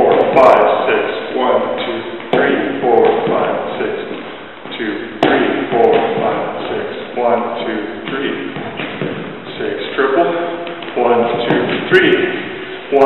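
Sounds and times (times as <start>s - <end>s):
man's voice: 0.0s - 8.8s, 9.4s - 13.0s
shoes tapping on hardwood floor: 1.8s - 6.8s, 8.0s - 9.6s, 10.6s - 12.6s.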